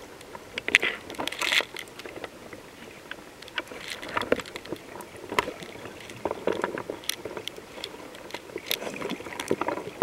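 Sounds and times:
water moving underwater: 0.0 - 10.0.

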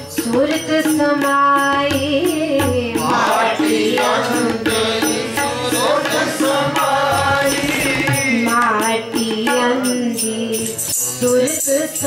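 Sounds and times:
woman singing lead: 0.0 - 3.6, 8.0 - 12.0
tabla playing steady rhythm: 0.0 - 12.0
group of voices singing: 2.6 - 9.6.

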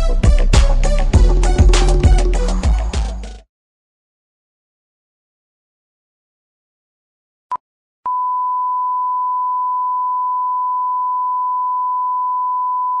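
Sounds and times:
steady pure tone: 1.2 - 3.1.

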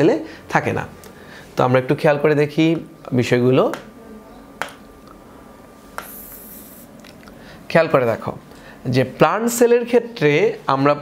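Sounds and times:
pen tapping a board: 3.7 - 3.9, 4.6 - 4.8, 6.0 - 6.2
pen sliding with scratchy hiss: 5.9 - 6.9.

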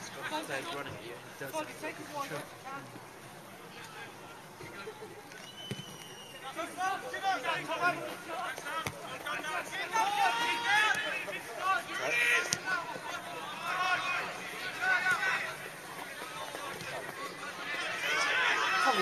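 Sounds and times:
men shouting and calling: 6.4 - 19.0.

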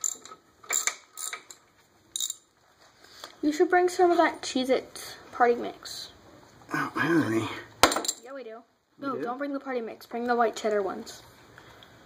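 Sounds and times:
ratchet wrench clicking: 2.2 - 2.4.

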